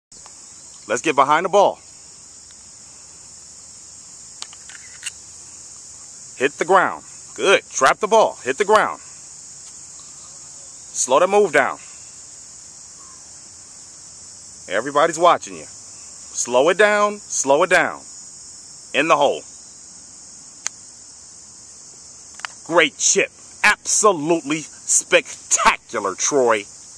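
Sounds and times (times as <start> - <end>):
insects chirring: 0.1 - 26.9.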